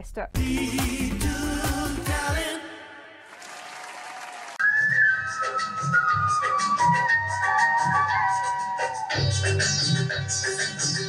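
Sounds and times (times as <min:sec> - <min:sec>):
loud dance music: 0:00.4 - 0:02.6, 0:06.6 - 0:11.0
applause: 0:03.2 - 0:04.6.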